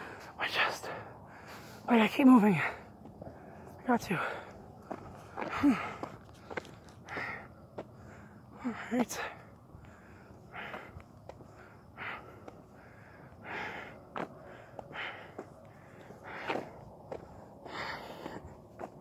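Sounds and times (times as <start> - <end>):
man breathing heavily: 0.0 - 19.0
light footsteps: 2.8 - 8.1, 9.0 - 19.0.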